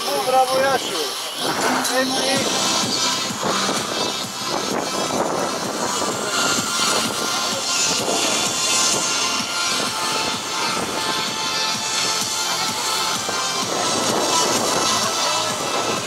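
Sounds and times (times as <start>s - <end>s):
music playing: 0.0s - 16.0s.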